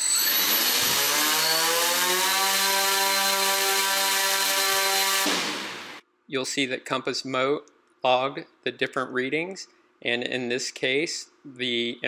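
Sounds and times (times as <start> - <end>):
drone motors whining: 0.0 - 6.0.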